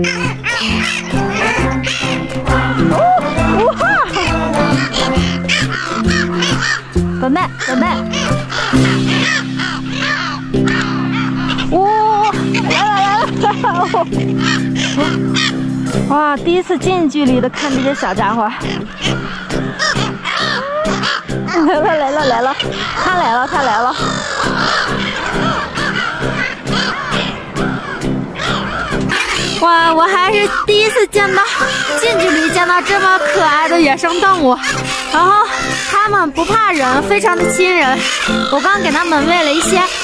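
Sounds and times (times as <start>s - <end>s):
gulls calling harshly: 0.0s - 40.0s
music with low sustained chords: 0.0s - 40.0s
background music with beat: 0.1s - 7.2s.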